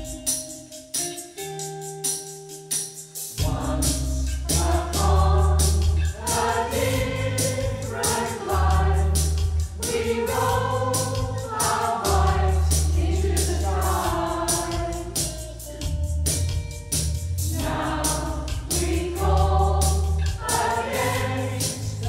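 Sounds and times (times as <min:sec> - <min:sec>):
steady percussive beat: 0:00.0 - 0:22.0
choir singing in harmony: 0:03.4 - 0:15.4, 0:17.5 - 0:22.0
bass accompaniment: 0:03.4 - 0:22.0.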